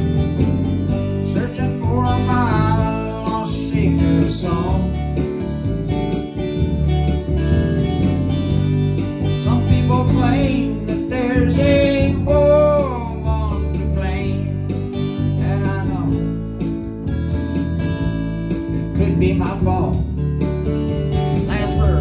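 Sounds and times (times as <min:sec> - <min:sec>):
electric guitar: 0:00.0 - 0:22.0
electronic keyboard: 0:00.0 - 0:22.0.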